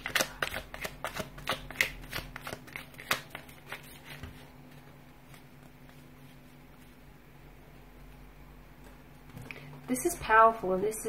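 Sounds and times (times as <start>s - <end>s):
cards being shuffled: 0.0s - 7.0s
faint steady hum: 0.0s - 11.0s.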